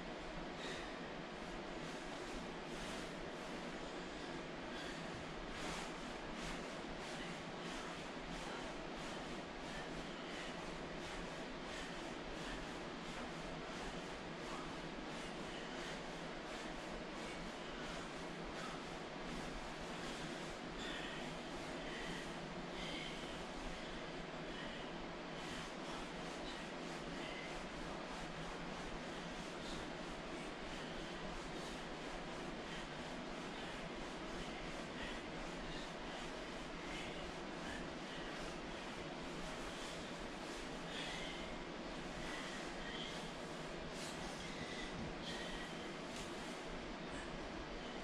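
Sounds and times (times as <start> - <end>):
steady background hiss: 0.0 - 48.0
man breathing hard: 0.2 - 48.0.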